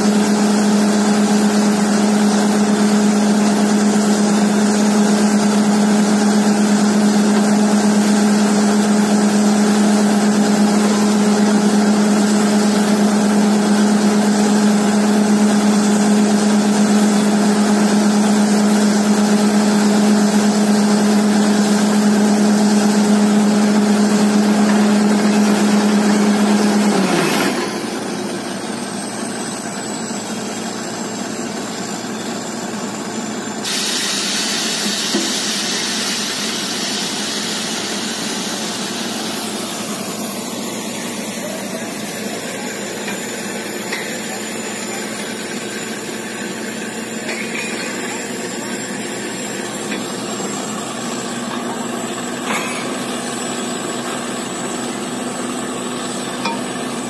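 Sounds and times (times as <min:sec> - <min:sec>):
drilling rig engine drone: 0:00.0 - 0:57.0.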